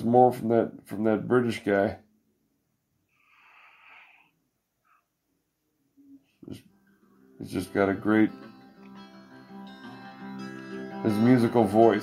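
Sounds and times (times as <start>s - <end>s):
person breathing faintly: 3.1s - 5.1s.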